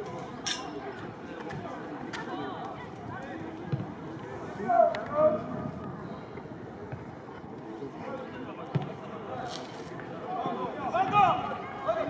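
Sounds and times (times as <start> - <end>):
faint voices of players: 0.0 - 12.0.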